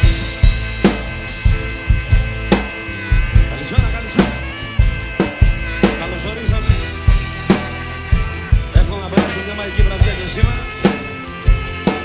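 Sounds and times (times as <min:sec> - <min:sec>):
cymbals: 0:00.0 - 0:12.0
pop backing track: 0:00.0 - 0:12.0.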